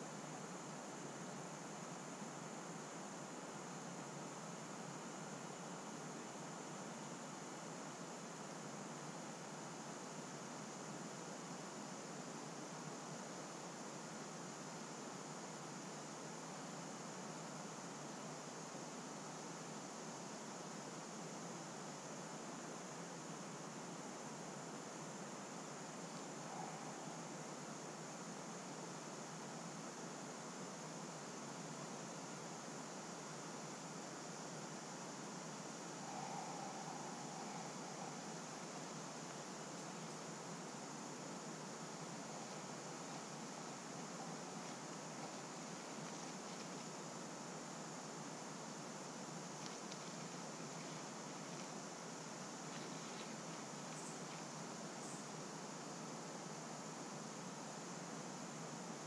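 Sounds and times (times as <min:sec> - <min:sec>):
faint outdoor background hiss: 0:00.0 - 0:59.0.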